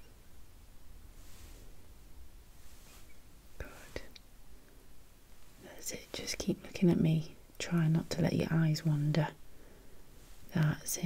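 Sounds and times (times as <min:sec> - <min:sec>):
soft whispering: 0:02.6 - 0:04.3, 0:05.5 - 0:09.5, 0:10.1 - 0:11.0.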